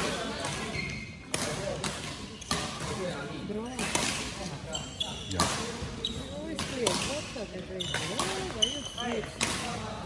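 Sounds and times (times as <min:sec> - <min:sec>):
rackets hitting shuttlecock: 0:00.0 - 0:04.6, 0:05.4 - 0:05.9, 0:06.5 - 0:10.0
shoes squeaking on court floor: 0:00.0 - 0:09.8.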